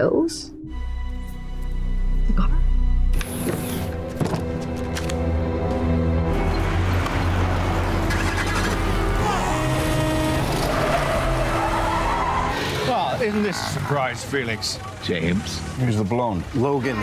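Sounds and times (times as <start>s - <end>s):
background score music: 0.0s - 14.7s
engine rumble: 3.8s - 17.0s.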